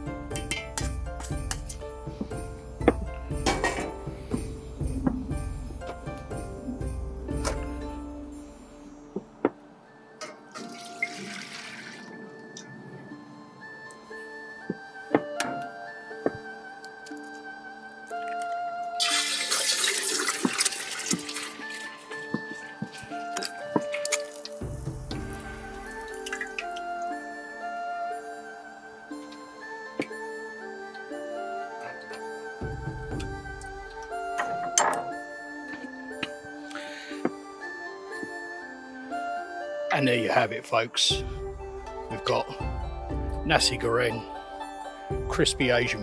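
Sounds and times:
background music: 0.0s - 46.0s
egg sizzling in hot oil: 19.0s - 24.7s.

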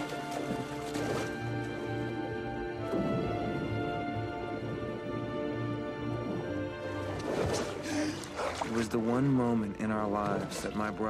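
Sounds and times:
water splashing: 0.0s - 11.0s.

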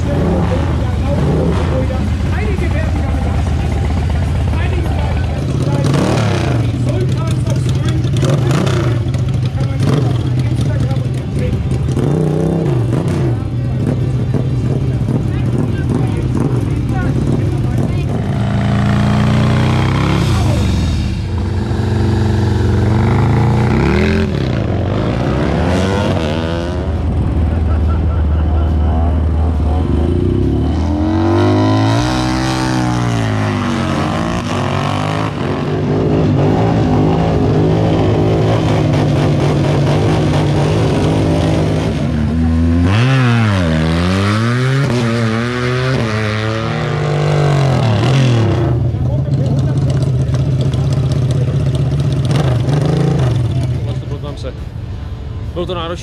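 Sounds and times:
motorcycle engines idling and revving: 0.0s - 56.0s.

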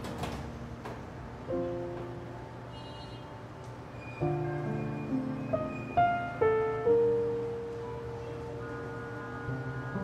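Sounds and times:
soft solo piano: 4.2s - 8.6s.

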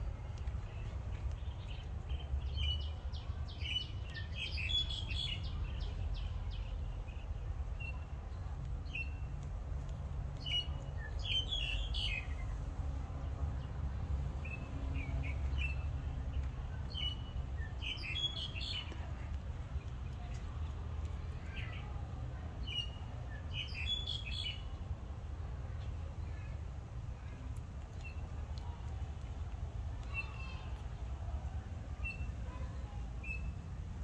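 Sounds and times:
birds chirping: 14.4s - 20.5s, 22.6s - 24.8s.

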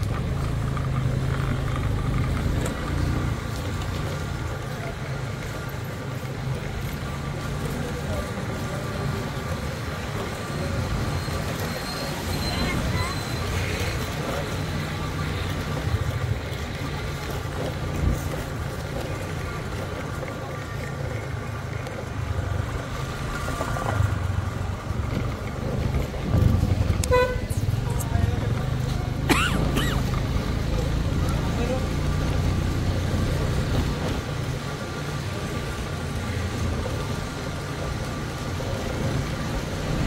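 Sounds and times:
low rumble of road traffic: 0.0s - 40.0s
people talking: 6.6s - 16.6s, 27.8s - 33.4s.

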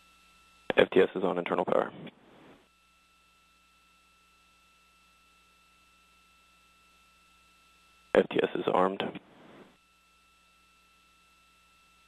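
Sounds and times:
faint steady hiss: 0.6s - 2.6s, 8.1s - 9.8s.

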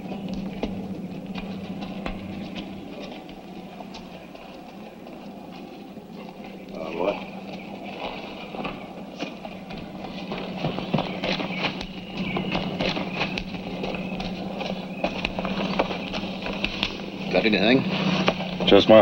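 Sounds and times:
hooves clattering on rocky ground: 0.0s - 19.0s
steady low hum: 0.0s - 19.0s.

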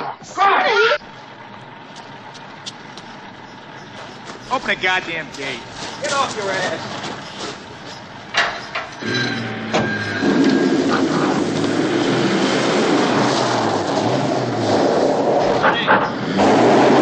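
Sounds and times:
car engine revving: 1.0s - 17.0s
sharp knocks: 7.0s - 9.9s.

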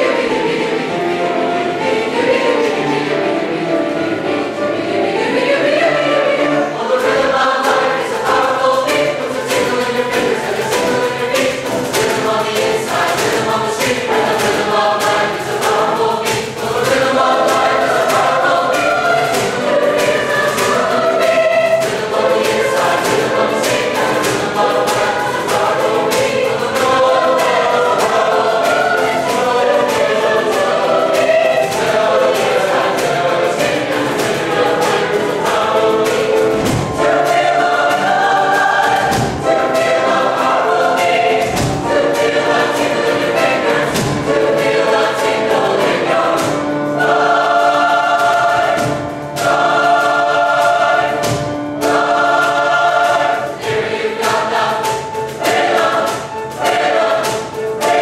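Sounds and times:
choir singing a show tune: 0.0s - 58.0s
sharp beat hits: 7.1s - 58.0s.

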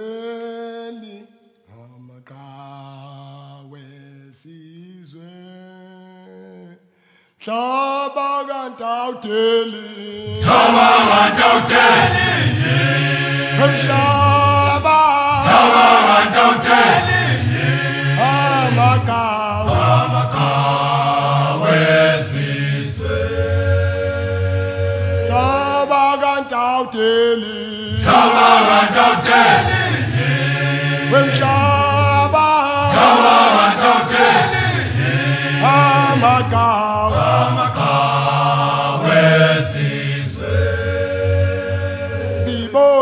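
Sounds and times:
male choir singing unaccompanied: 7.5s - 43.0s.

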